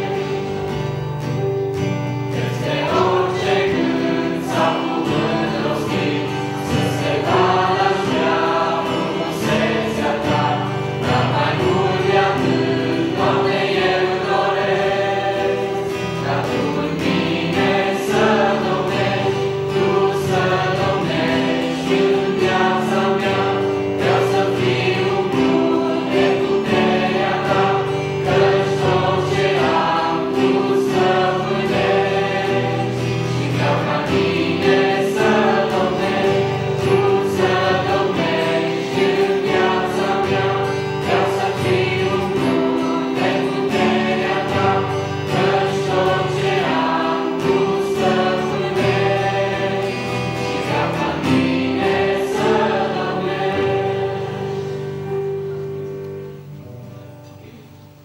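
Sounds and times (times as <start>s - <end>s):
youth choir singing: 0.0s - 56.4s
guitar accompaniment: 0.0s - 58.0s.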